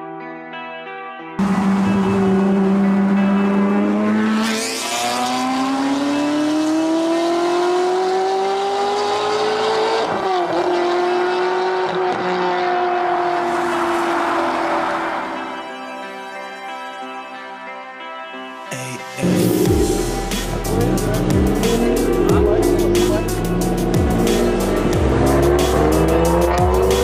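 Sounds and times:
music: 0.0s - 9.6s, 14.3s - 27.0s
car engine accelerating hard: 1.4s - 15.4s, 19.2s - 27.0s.

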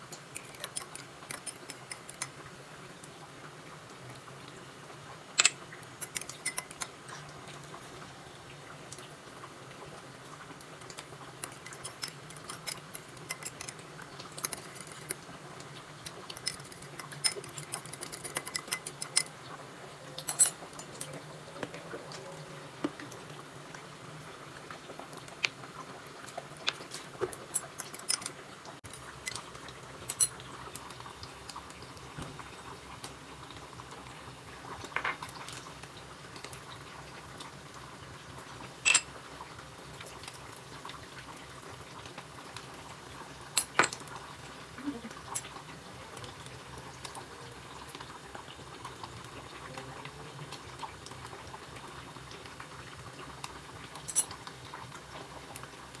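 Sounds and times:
utensils clinking on ceramic: 0.0s - 2.3s, 5.4s - 6.9s, 11.4s - 15.2s, 16.0s - 19.3s, 20.2s - 21.1s, 27.4s - 29.4s, 30.1s - 30.4s, 38.8s - 39.1s, 54.0s - 54.4s.

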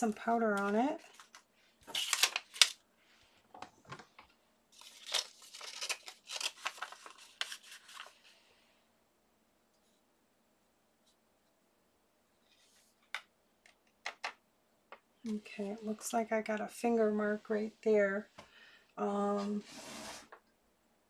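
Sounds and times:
paper envelope rustling: 0.6s - 2.8s, 4.8s - 8.4s.

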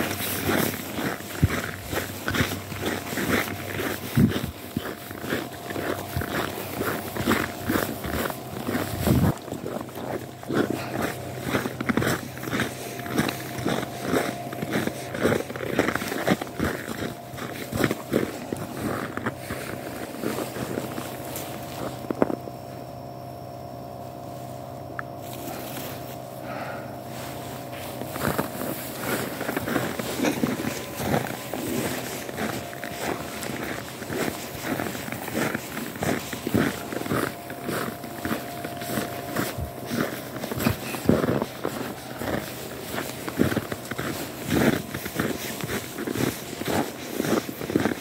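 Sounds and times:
footsteps crunching in snow: 0.0s - 48.0s
steady hum: 0.0s - 48.0s.

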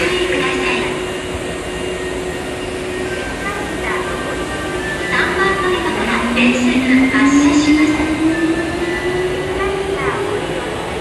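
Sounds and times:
wheels rumbling on rail: 0.0s - 11.0s.

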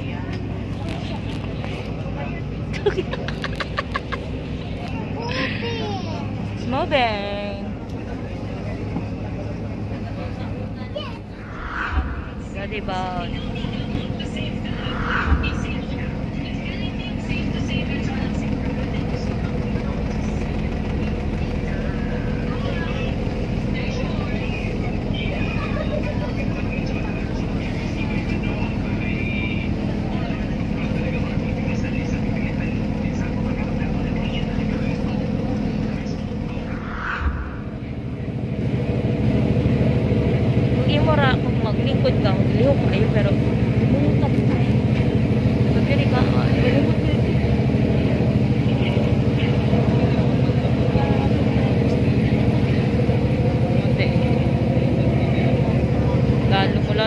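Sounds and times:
boat engine drone: 0.0s - 57.0s.

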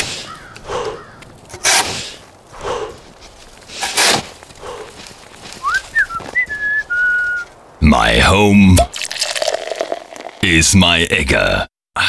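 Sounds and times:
whistled phrase: 5.6s - 7.5s.

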